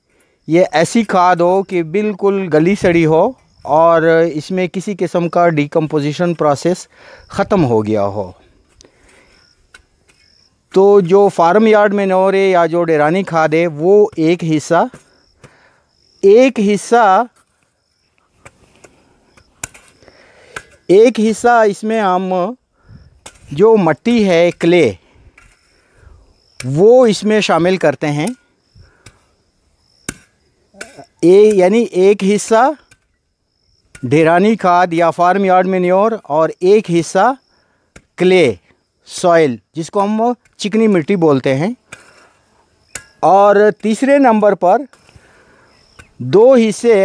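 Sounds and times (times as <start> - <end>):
high-pitched insect calls: 0.0 - 47.0
man speaking: 0.5 - 8.5, 10.7 - 15.0, 16.2 - 17.3, 20.9 - 22.6, 23.5 - 25.0, 26.6 - 28.4, 30.8 - 32.8, 34.0 - 37.4, 38.2 - 41.8, 43.2 - 44.9, 46.2 - 47.0
shovel striking stony ground: 18.4 - 20.0, 23.2 - 23.6, 30.1 - 31.8, 42.9 - 44.0.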